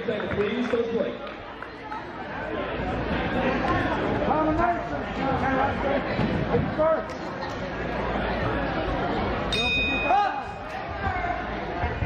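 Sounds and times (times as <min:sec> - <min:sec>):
crowd chatter in large hall: 0:00.0 - 0:12.0
boxing ring bell: 0:09.5 - 0:10.5.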